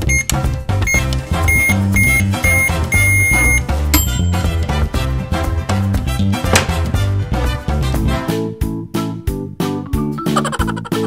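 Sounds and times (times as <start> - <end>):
toy microwave beeping: 0.0 - 4.4
upbeat background music: 0.0 - 11.0.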